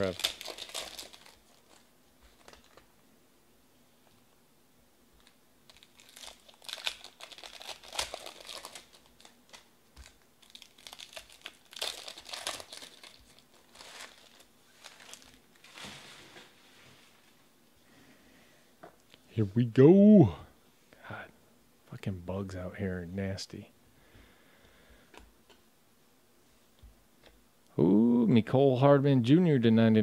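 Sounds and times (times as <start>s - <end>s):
foil wrappers crinkling and tearing: 0.0s - 2.9s, 5.2s - 16.4s.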